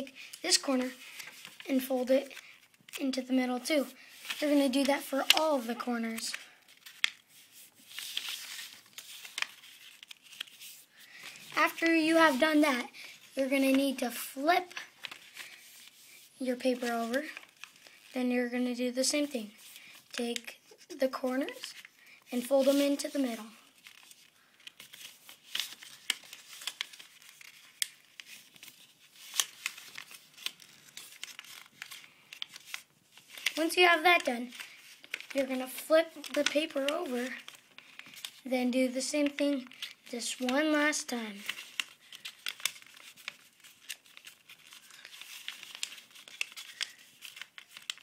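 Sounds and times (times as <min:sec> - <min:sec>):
paper rustling while folded: 0:00.0 - 0:48.0
sharp paper crinkles: 0:00.0 - 0:48.0.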